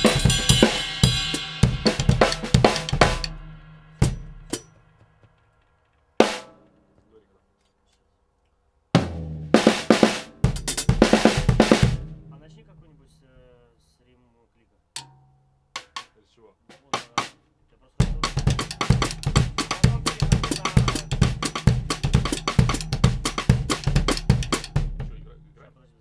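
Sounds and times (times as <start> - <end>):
cymbal strikes: 0.0 - 4.8, 18.0 - 25.6
drum kit fills: 0.0 - 5.5, 6.2 - 6.8, 9.0 - 13.7, 15.8 - 17.4, 18.0 - 25.8.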